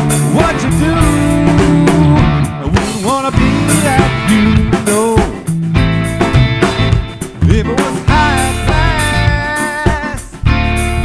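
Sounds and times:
drum kit: 0:00.0 - 0:11.0
electric guitar: 0:00.0 - 0:11.0
live rock band: 0:00.0 - 0:11.0.

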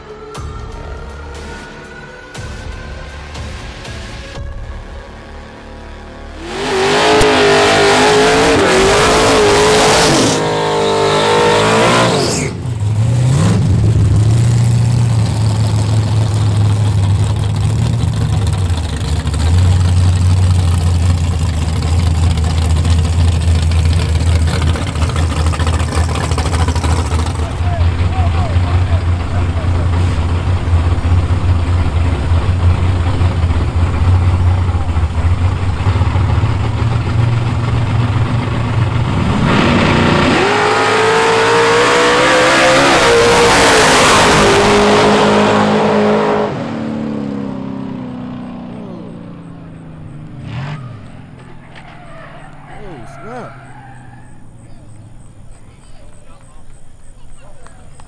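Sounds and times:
loud sound with shifting pitch: 0:00.0 - 0:14.4
drag car engines idling: 0:12.6 - 0:39.3, 0:47.8 - 0:50.4, 0:51.0 - 0:58.0.

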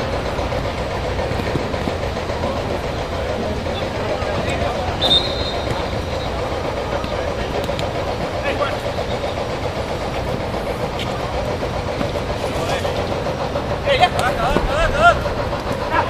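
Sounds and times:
distant players shouting: 0:00.0 - 0:09.8, 0:12.0 - 0:16.0
outdoor background rumble: 0:00.0 - 0:16.0.

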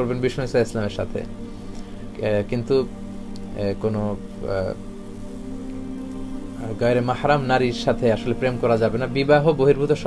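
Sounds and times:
man talking: 0:00.0 - 0:01.3, 0:02.2 - 0:02.9, 0:03.5 - 0:04.8, 0:06.6 - 0:10.0.

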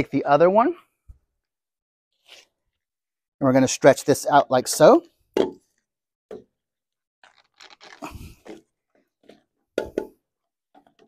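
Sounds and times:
plastic hose crinkling: 0:02.2 - 0:02.8, 0:07.2 - 0:09.6.

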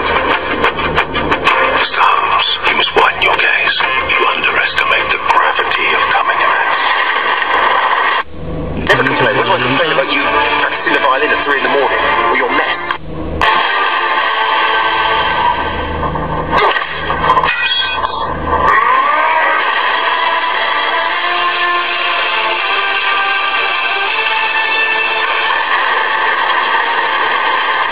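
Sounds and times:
background music: 0:00.0 - 0:07.0, 0:08.8 - 0:27.9
film voices: 0:01.4 - 0:08.2, 0:08.8 - 0:13.0.

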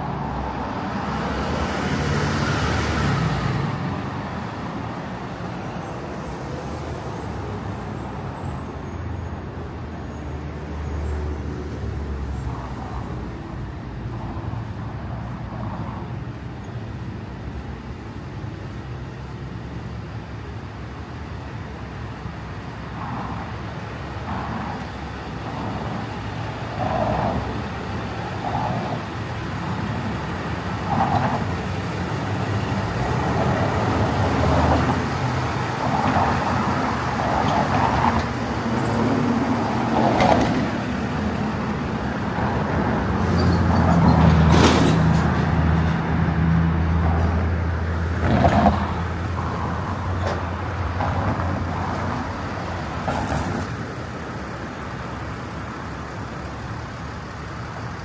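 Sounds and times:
cars and trucks driving past: 0:00.0 - 0:58.0
vehicle engine hum: 0:00.0 - 0:58.0.

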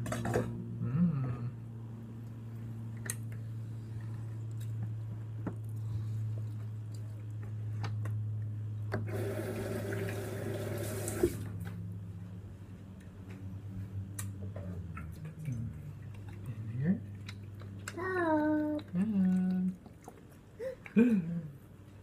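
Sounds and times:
steady low hum: 0:00.0 - 0:22.0
tap water running: 0:09.0 - 0:11.6.

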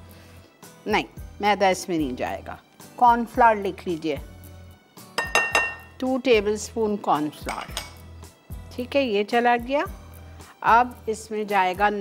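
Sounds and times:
spoon clinking glass bowl: 0:05.2 - 0:05.9, 0:07.5 - 0:08.0.

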